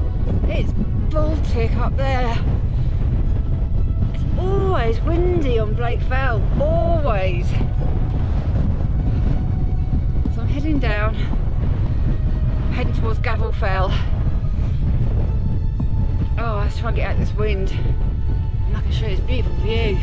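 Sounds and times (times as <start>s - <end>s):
strong wind buffeting microphone: 0.0s - 20.0s
woman's voice: 0.4s - 2.6s, 4.2s - 7.8s, 10.3s - 11.5s, 12.7s - 14.2s, 16.3s - 18.0s, 18.6s - 20.0s.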